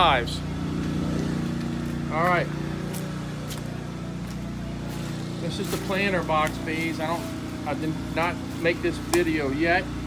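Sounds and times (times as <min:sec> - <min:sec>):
generator engine humming: 0:00.0 - 0:10.0.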